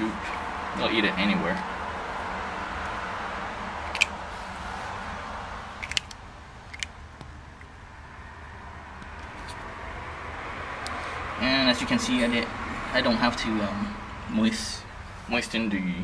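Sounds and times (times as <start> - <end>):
tortoise crunching pellets: 3.9 - 4.4, 5.6 - 7.8.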